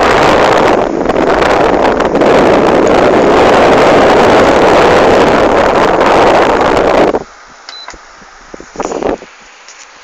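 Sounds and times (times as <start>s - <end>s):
fan wind noise on microphone: 0.0s - 10.0s.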